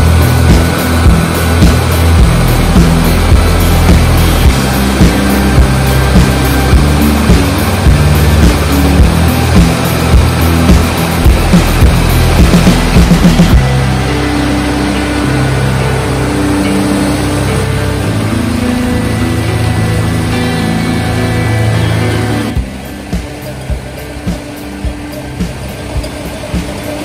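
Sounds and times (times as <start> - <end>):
music with long held notes: 0.0 - 27.0.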